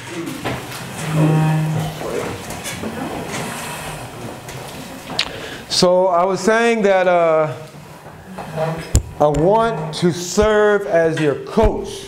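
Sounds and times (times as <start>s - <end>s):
chairs shifting: 0.0s - 5.7s, 7.6s - 11.8s
indistinct voices: 0.0s - 12.0s
steady drawn-out tone: 0.9s - 4.3s.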